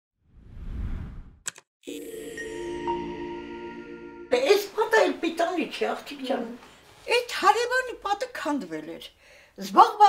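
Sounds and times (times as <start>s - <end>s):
held musical chord: 1.9s - 5.4s.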